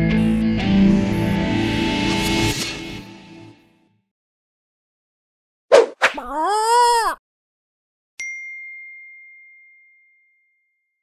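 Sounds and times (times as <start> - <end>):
bell-like ding: 8.2 - 10.8.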